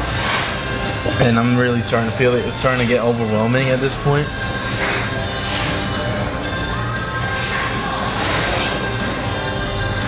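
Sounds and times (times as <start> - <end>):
background music sustained tones: 0.0 - 10.0.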